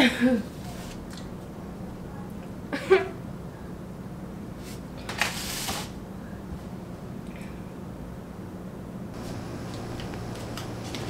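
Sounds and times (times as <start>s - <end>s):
woman sobbing: 0.0s - 0.5s.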